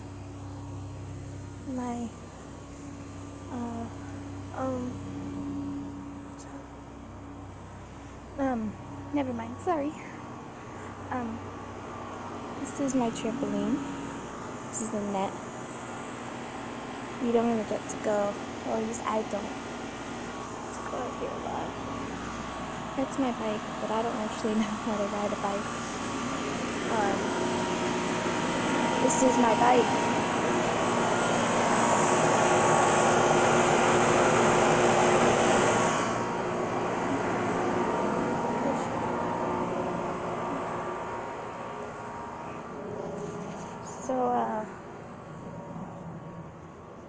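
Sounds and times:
air conditioning unit humming: 0.0s - 47.0s.

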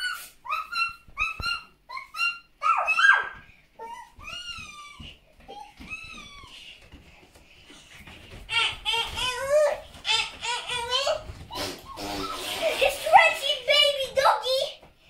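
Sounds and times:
toy dog puppy yaps: 0.0s - 3.4s.

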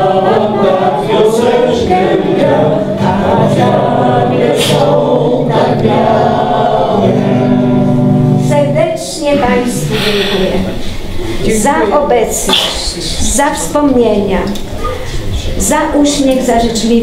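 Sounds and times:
group singing together: 0.0s - 13.4s
guitar accompaniment: 0.0s - 15.3s.

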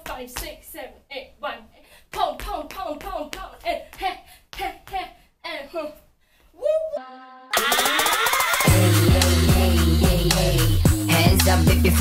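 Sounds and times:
woman singing wordless syllables: 0.0s - 7.6s, 9.2s - 12.0s.

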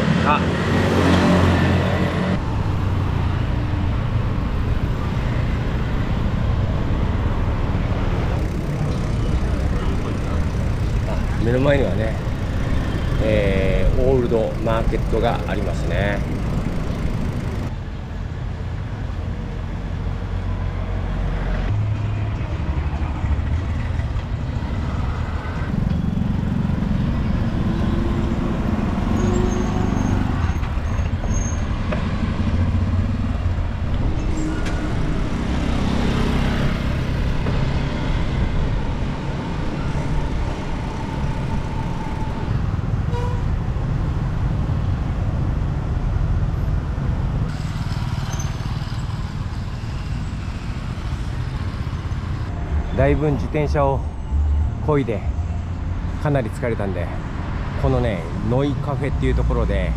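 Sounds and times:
motorbikes passing: 0.0s - 18.1s, 21.6s - 54.1s
cars passing: 0.0s - 59.9s
road and wind rumble: 0.0s - 59.9s.

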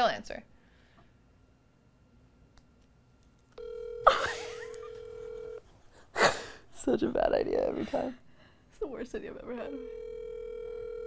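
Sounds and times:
phone ringback tone: 3.6s - 5.6s, 9.7s - 11.0s.

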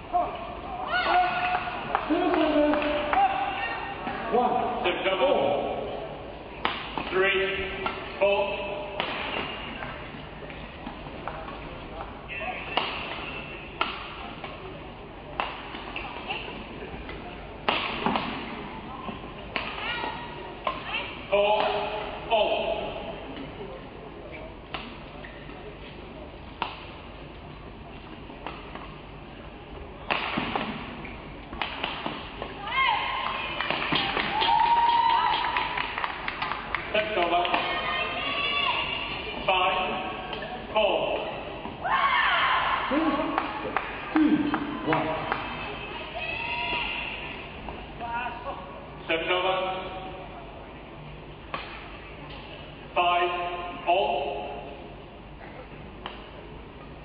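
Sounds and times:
rackets hitting shuttlecock: 6.6s - 7.2s, 8.9s - 10.0s, 12.6s - 14.7s, 15.3s - 16.4s, 17.0s - 19.9s, 30.0s - 32.6s, 33.2s - 34.5s.

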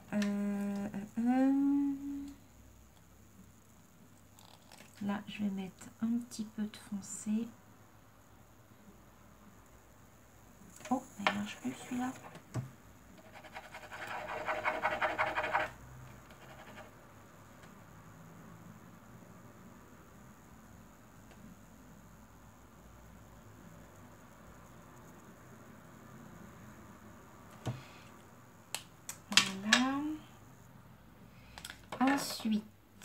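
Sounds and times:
pen scratching on paper: 13.2s - 16.9s.

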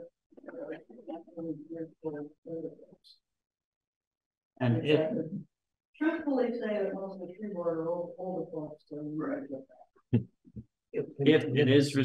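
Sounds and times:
person talking: 4.6s - 5.4s, 11.0s - 12.0s.

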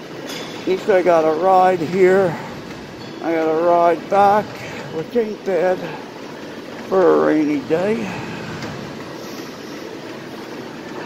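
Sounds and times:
exercise bike pedalling: 0.0s - 11.0s
gym hum and hiss: 0.0s - 11.0s.

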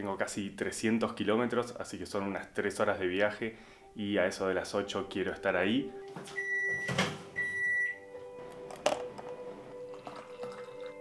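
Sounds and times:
appliance electronic beep: 6.3s - 8.0s.

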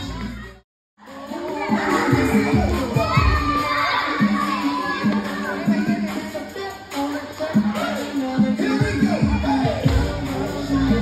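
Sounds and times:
children shouting: 0.0s - 6.3s
loud dance music: 0.0s - 11.0s.

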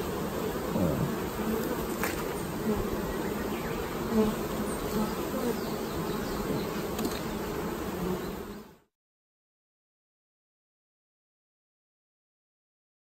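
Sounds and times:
bees buzzing: 0.0s - 8.9s.

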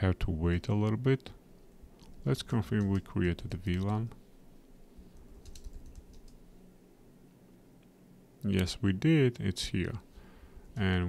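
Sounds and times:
faint keyboard keystrokes: 2.0s - 4.2s, 5.1s - 6.4s.

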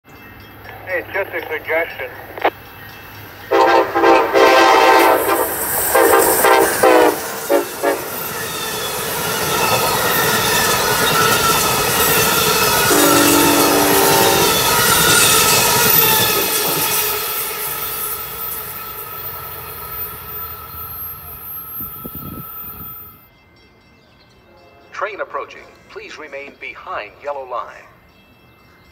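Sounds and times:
train wheels roaring on rail: 2.6s - 23.1s
train horn: 3.5s - 8.2s, 12.8s - 17.4s
high squealing tones: 12.9s - 15.4s.

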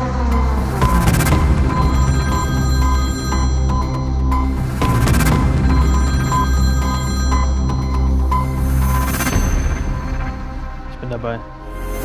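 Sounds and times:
telephone ringing: 0.0s - 9.8s
music with heavy bass: 0.0s - 12.0s.

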